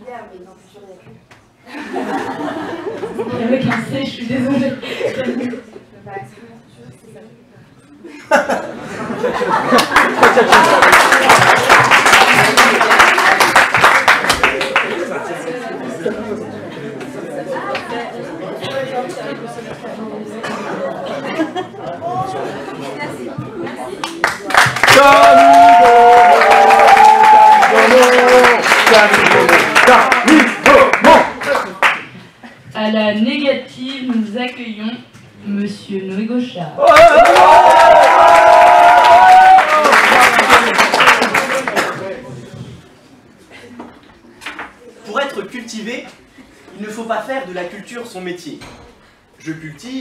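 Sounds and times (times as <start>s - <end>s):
audience chatter: 0.0s - 32.7s, 39.8s - 47.3s
people cheering: 9.6s - 15.0s, 24.5s - 31.6s, 36.8s - 41.8s
audience applauding: 9.6s - 15.2s, 24.0s - 32.1s, 36.8s - 42.1s.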